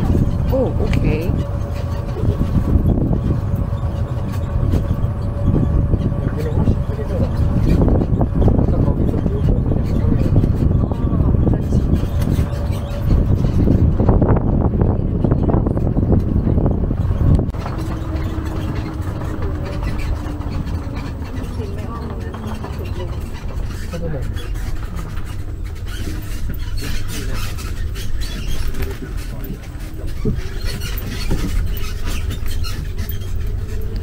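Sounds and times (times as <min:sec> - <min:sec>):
light rattling: 0:00.0 - 0:34.0
tram rumbling: 0:00.0 - 0:34.0.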